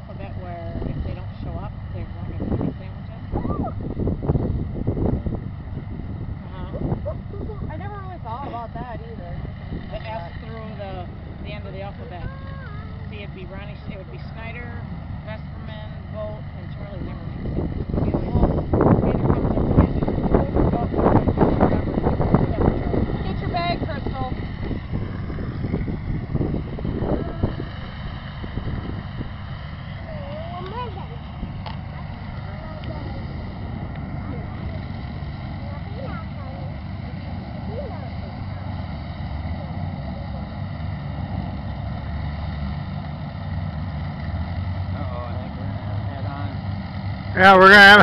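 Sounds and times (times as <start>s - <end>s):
tractor engine running: 0.0s - 48.0s
faint voices: 6.4s - 43.5s.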